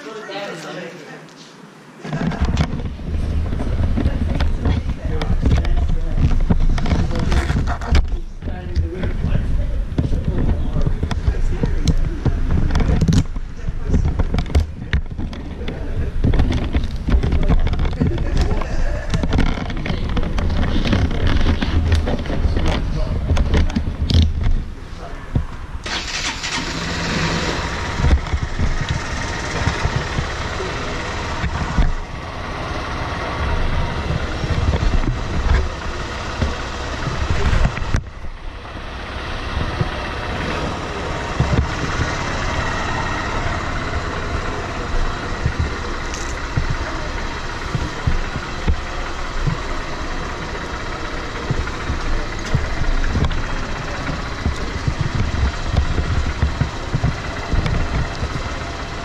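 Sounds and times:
motorcycle engine idling: 2.7s - 59.0s.

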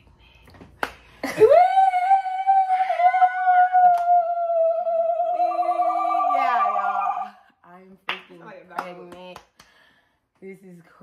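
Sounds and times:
woman's long high ooh: 1.2s - 7.4s.

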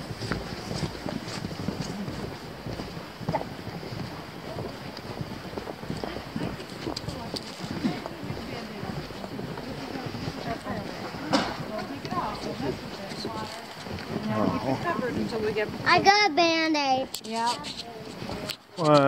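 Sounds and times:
footsteps on boardwalk: 0.0s - 19.0s
people talking: 6.0s - 19.0s
sharp knock: 11.3s - 11.6s.

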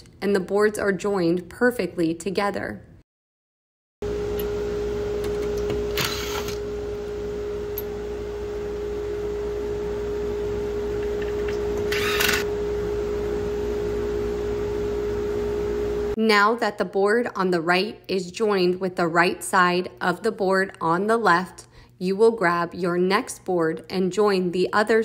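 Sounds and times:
cordless drill whirring: 5.6s - 6.6s, 11.8s - 12.5s.

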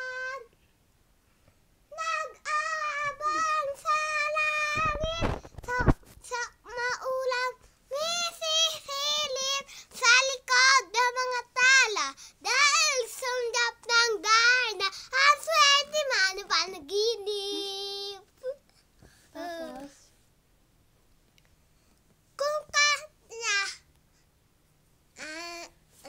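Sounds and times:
boy singing unaccompanied: 0.0s - 0.6s, 1.9s - 18.6s.

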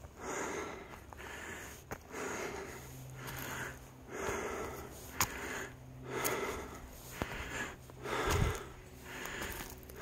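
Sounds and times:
person breathing hard: 0.0s - 10.0s.

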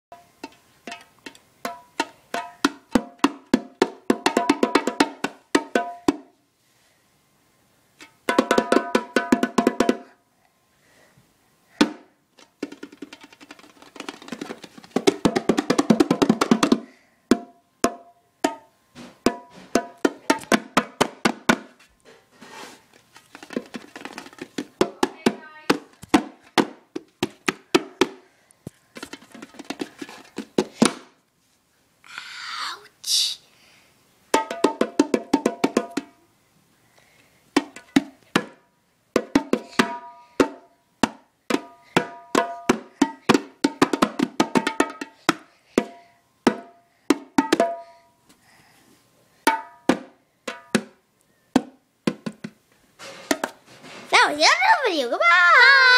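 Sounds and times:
bongos played by hand: 0.1s - 6.3s, 8.0s - 10.1s, 11.8s - 21.8s, 23.2s - 28.2s, 29.0s - 31.1s, 34.3s - 36.2s, 37.6s - 38.6s, 39.2s - 47.9s, 49.4s - 51.0s, 51.6s - 54.3s.

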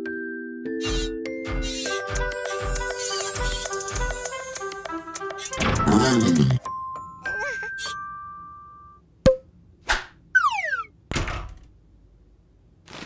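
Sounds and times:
electronic beeping tones: 10.4s - 10.9s
falling whistle glide: 10.4s - 10.9s.

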